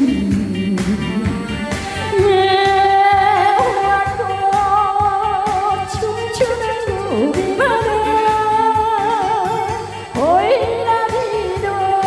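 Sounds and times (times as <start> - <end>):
amplified accompaniment with a beat: 0.0 - 12.0
woman singing into a microphone: 0.0 - 12.0.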